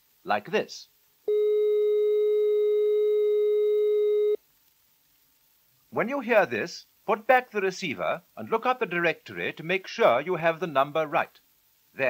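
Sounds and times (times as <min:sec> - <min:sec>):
steady high-pitched telephone tone: 0:01.3 - 0:04.4.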